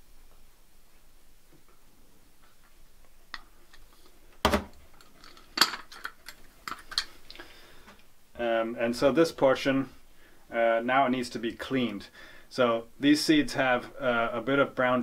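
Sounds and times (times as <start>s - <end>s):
glassware clinking and knocking: 4.5s - 7.1s.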